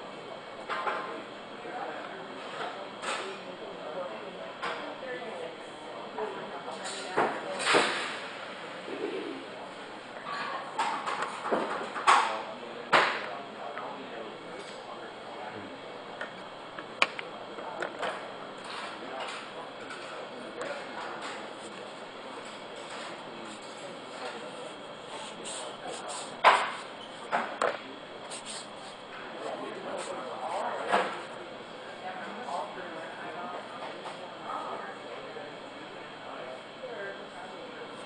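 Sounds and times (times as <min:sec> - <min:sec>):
people talking indistinctly: 0:12.0 - 0:38.0.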